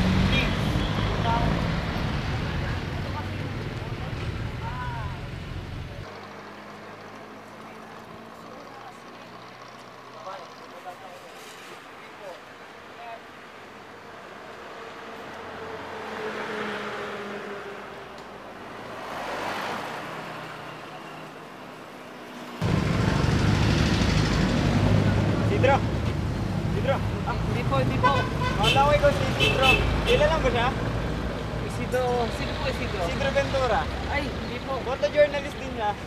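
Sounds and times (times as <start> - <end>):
traffic rumble: 0.0 - 36.0
vehicles passing on street: 0.0 - 36.0.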